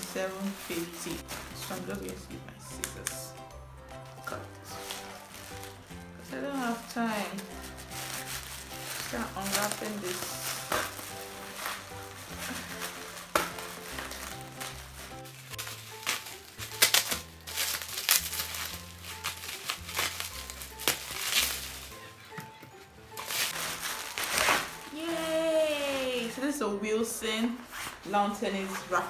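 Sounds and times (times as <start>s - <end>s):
scissors cutting plastic: 0.0s - 3.4s, 4.1s - 25.3s
plastic wrapping crinkling: 0.0s - 26.7s
background music with held notes: 0.0s - 29.0s.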